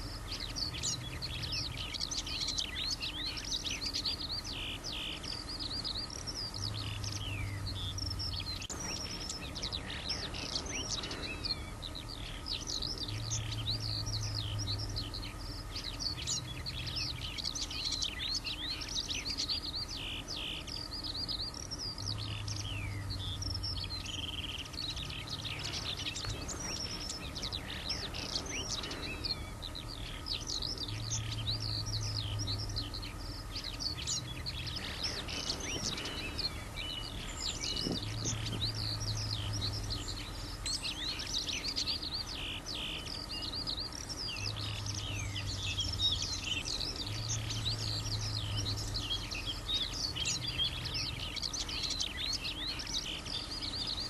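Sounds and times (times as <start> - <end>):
distant road traffic hum: 0.0 - 54.0
skylark song: 0.0 - 54.0.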